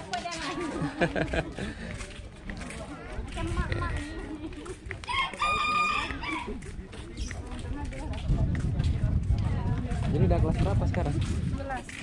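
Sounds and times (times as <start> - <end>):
rooster crowing: 5.1 - 6.5.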